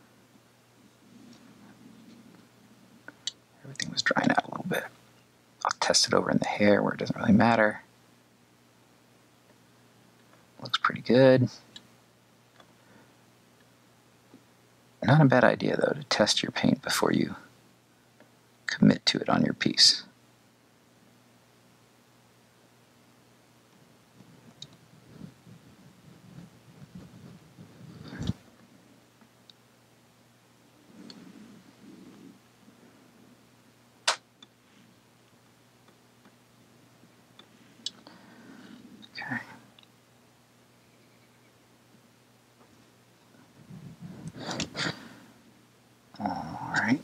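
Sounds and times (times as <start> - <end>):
soft handling noises: 0.8 - 5.3, 23.7 - 29.4, 30.7 - 33.4
sharp clicks: 34.0 - 34.6.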